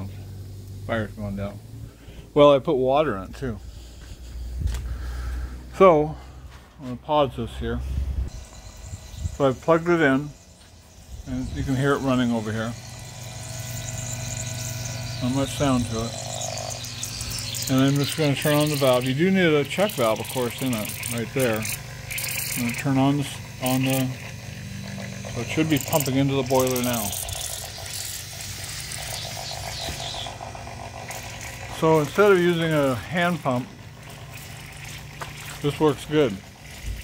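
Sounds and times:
water pump humming: 0.0 - 37.0.

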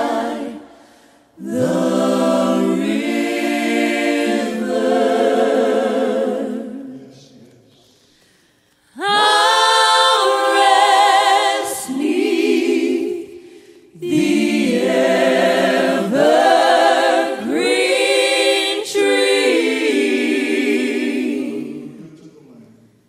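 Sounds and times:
vocal group singing in harmony: 0.0 - 22.7.

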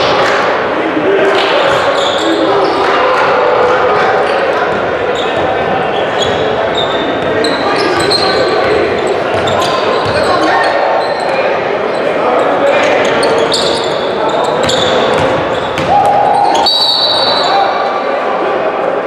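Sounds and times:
indistinct voices: 0.0 - 19.0
sneaker squeaks: 1.6 - 3.0, 4.2 - 17.9.

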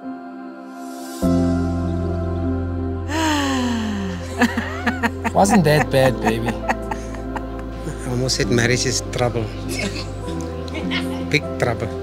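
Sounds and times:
soft background music: 0.0 - 12.0
person sighing: 3.1 - 4.4.

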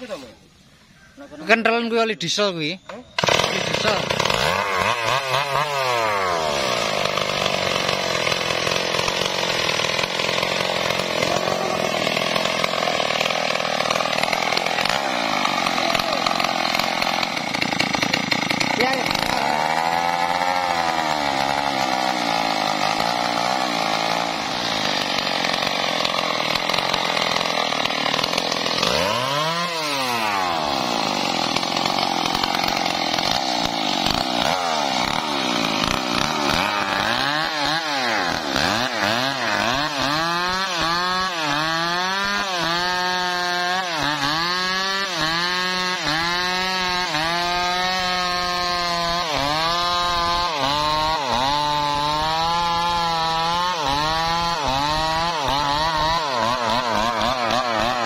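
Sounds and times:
chainsaw revving: 3.0 - 58.0.

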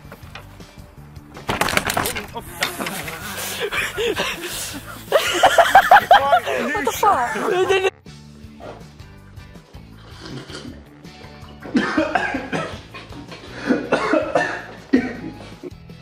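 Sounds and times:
background music: 0.0 - 16.0
man coughing and spluttering: 11.6 - 15.4.

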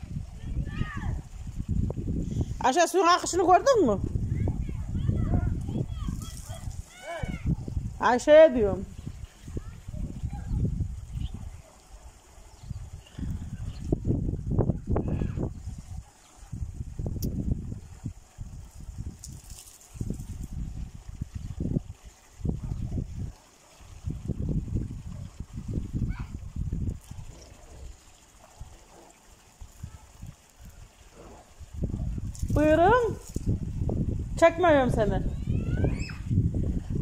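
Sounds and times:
water trickling in earth channel: 0.0 - 34.9
wind gusting on microphone: 0.0 - 37.0
person calling out: 6.9 - 7.5.

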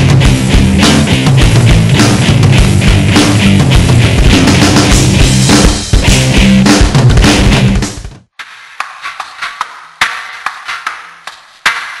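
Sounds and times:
loud rock music: 0.0 - 8.3
percussive tapping and knocking: 8.8 - 12.0.

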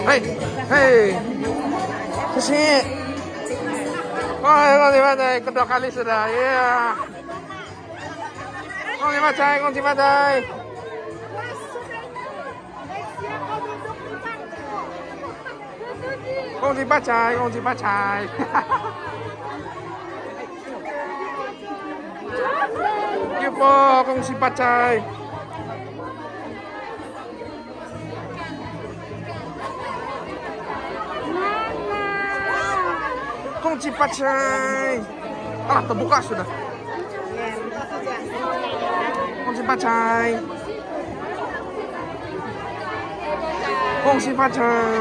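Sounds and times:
people chattering: 0.0 - 45.0.

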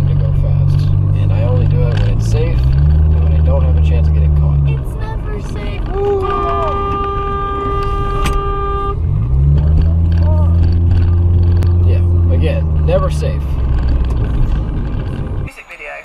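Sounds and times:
vehicle horns blaring: 4.8 - 11.3.

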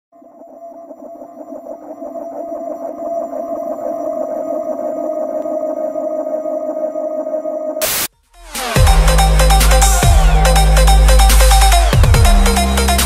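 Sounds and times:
buzzy synthesized drone: 0.2 - 13.0.

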